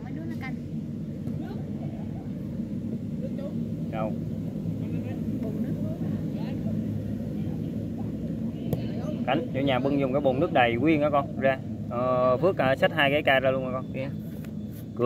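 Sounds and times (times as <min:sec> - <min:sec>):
steady low rumble: 0:00.0 - 0:15.0
ball being kicked thump: 0:08.7 - 0:09.0.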